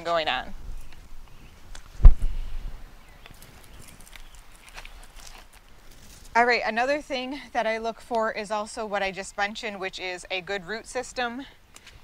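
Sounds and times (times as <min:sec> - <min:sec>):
plastic pot rustling and clicking: 0:03.2 - 0:05.7.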